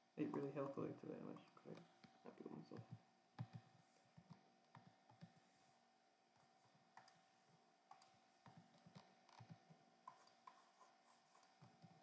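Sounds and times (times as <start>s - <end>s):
faint steady hum: 0.0s - 12.0s
light clicks and soft taps: 0.2s - 5.7s, 6.3s - 12.0s.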